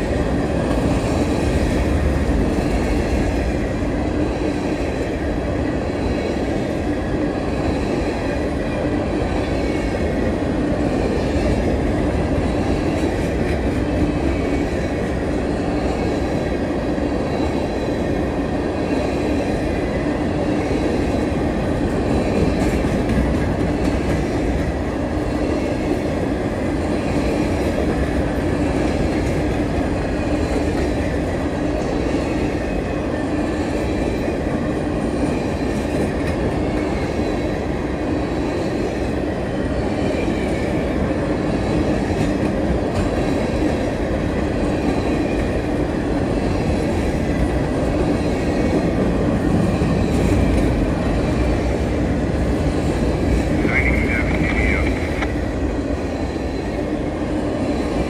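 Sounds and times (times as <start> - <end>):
freight train wheels clattering: 0.0 - 58.0.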